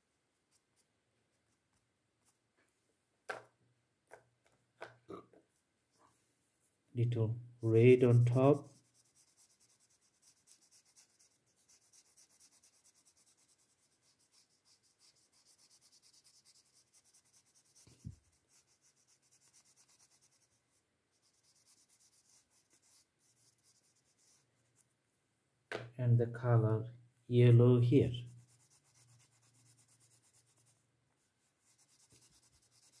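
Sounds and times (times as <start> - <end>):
crayon scratching on paper: 8.2 - 24.4, 28.1 - 30.8, 31.6 - 33.0.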